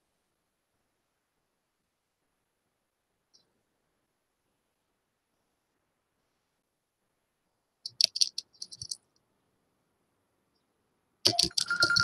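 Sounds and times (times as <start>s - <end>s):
rapid clicking and rattling: 7.9s - 9.0s, 11.3s - 12.0s.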